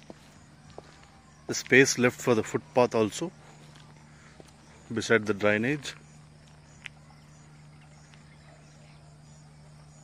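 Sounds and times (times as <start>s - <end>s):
insects chirping: 0.0s - 10.0s
steady low hum: 0.0s - 10.0s.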